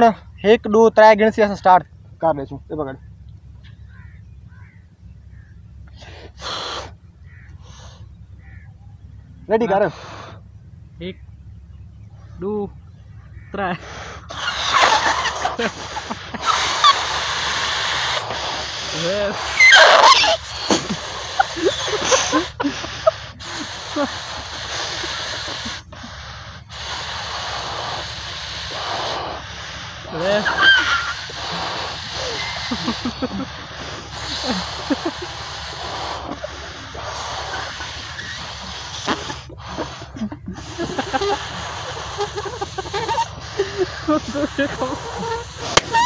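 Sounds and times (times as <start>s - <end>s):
steady low rumble: 0.0s - 19.6s, 20.2s - 46.0s
person's breath puff: 5.9s - 7.0s, 13.8s - 46.0s.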